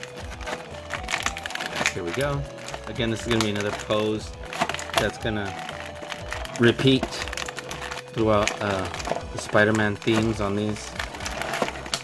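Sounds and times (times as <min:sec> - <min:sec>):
background music: 0:00.0 - 0:12.0
plastic blister tray crinkling: 0:00.0 - 0:12.0.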